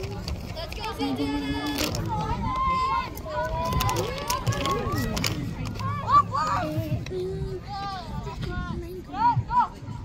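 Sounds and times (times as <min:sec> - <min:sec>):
children shouting and chattering: 0:00.0 - 0:10.0.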